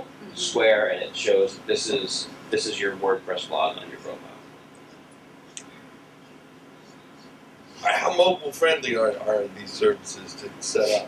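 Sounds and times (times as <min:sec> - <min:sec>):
man speaking: 0:00.0 - 0:04.4, 0:07.8 - 0:11.0
low steady hum: 0:00.0 - 0:11.0.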